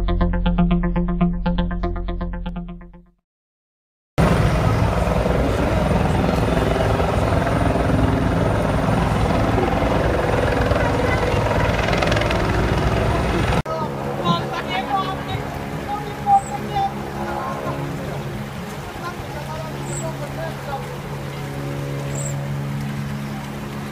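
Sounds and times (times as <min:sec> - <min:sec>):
voices: 0:04.2 - 0:22.5
helicopter rotor and engine: 0:04.2 - 0:23.9.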